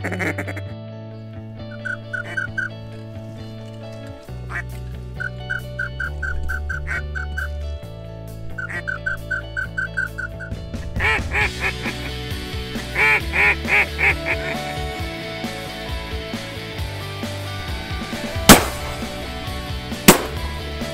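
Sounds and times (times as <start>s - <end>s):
duck call quacks: 0.0s - 0.6s, 1.7s - 2.7s, 6.0s - 7.2s
background music: 0.0s - 20.9s.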